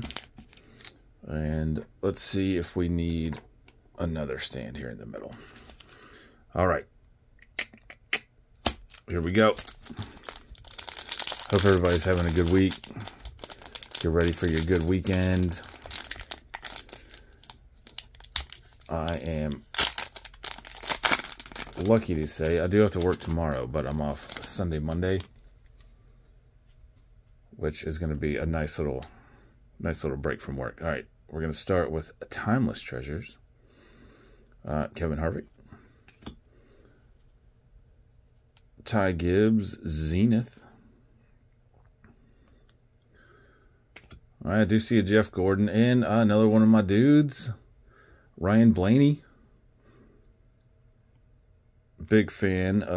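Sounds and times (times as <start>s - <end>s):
foil wrapper crinkling: 0.0s - 0.8s, 8.6s - 25.3s
trading cards being flipped: 8.6s - 23.3s.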